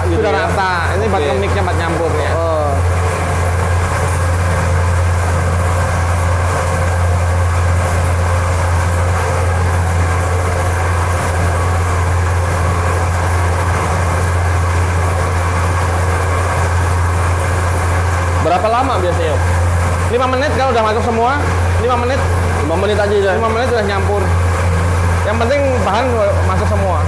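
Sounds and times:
feed mixer humming: 0.0s - 27.0s.

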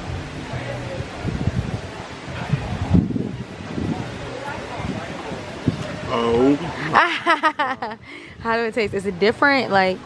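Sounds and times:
light breeze: 0.0s - 10.0s.

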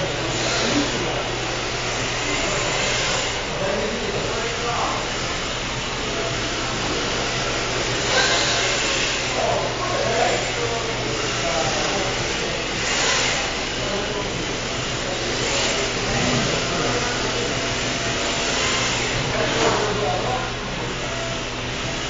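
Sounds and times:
rc car electric motors whining: 0.0s - 22.0s
steady low hum: 0.0s - 22.0s.

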